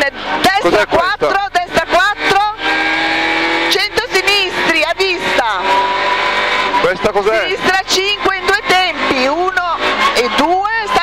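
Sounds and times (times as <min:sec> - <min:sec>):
car engine running hard: 0:00.0 - 0:11.0.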